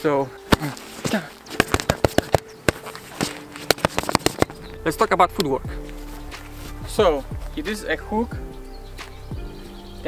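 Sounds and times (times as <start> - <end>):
hands slapping padded dummy: 0.5 - 4.6.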